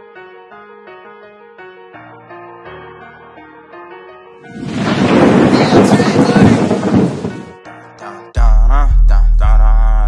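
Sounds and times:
soft piano music: 0:00.0 - 0:08.4
rushing rumbling noise: 0:04.5 - 0:07.6.

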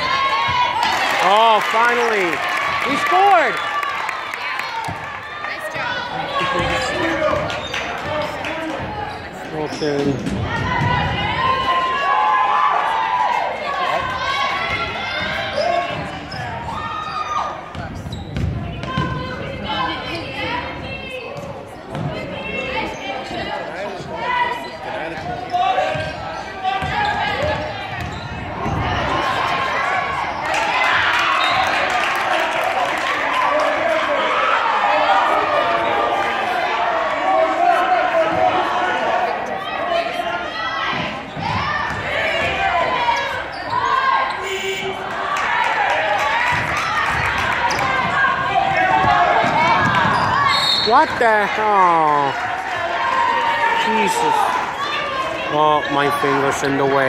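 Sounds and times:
crowd chatter and shouting: 0:00.0 - 0:57.0.

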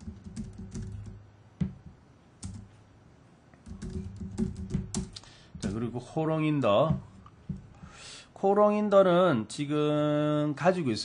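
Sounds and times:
typing on computer keyboard: 0:00.0 - 0:01.2, 0:02.4 - 0:02.7, 0:03.6 - 0:05.2.

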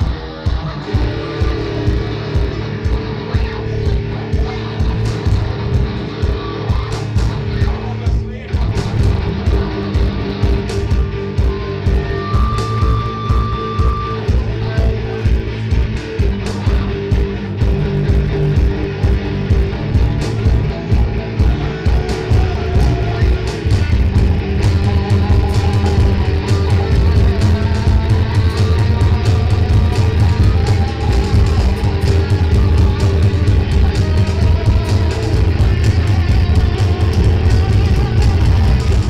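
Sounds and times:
drums keeping a beat: 0:00.0 - 0:39.0
heavy electric guitar: 0:00.0 - 0:39.0.

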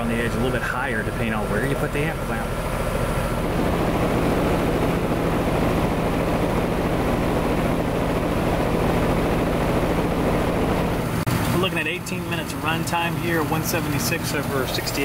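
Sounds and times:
compressor low hum: 0:00.0 - 0:15.0
fan blowing air whoosh: 0:00.0 - 0:15.0.

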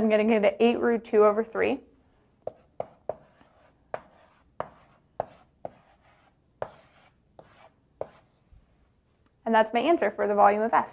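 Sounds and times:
chalk tapping on blackboard: 0:02.4 - 0:08.2
chalk scratching on blackboard: 0:02.4 - 0:08.3.

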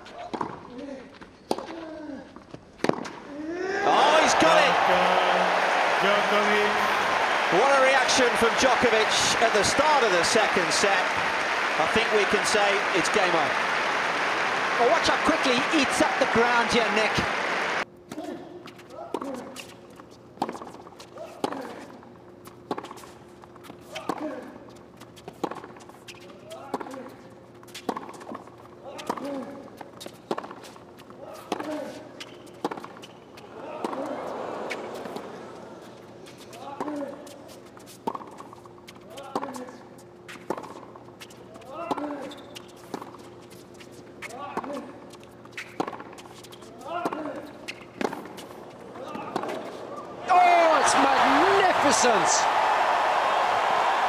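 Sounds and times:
tennis rackets striking ball: 0:31.3 - 0:35.3, 0:44.2 - 0:49.8.

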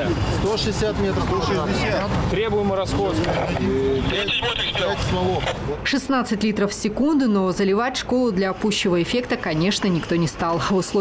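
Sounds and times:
men talking: 0:00.0 - 0:05.8.

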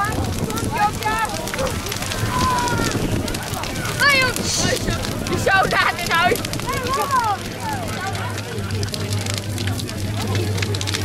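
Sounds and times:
bonfire crackling and popping: 0:00.0 - 0:11.0
people's voices: 0:00.0 - 0:11.0
steady low rumble: 0:00.0 - 0:11.0.

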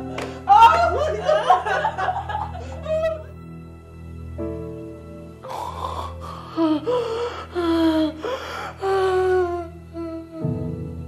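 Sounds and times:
woman's drawn-out vocal cries: 0:00.4 - 0:01.6.

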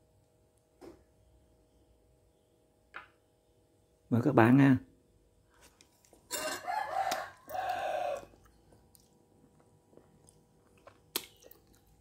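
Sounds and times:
rooster crowing: 0:06.3 - 0:08.4.

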